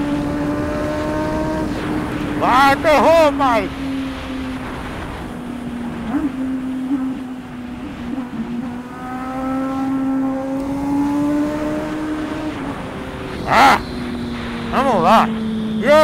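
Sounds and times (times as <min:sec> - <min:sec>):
motorcycle engine running: 0:00.0 - 0:16.0
wind noise: 0:00.0 - 0:16.0.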